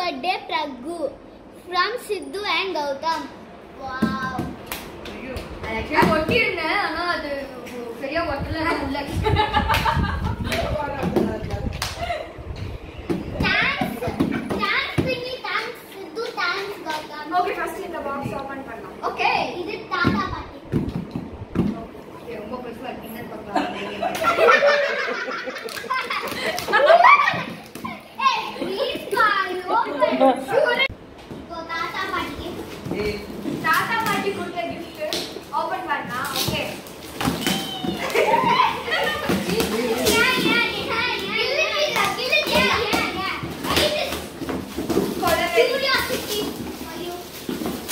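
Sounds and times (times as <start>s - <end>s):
children talking excitedly: 0.0s - 20.7s, 21.8s - 47.9s
children shouting excitedly: 37.4s - 39.2s.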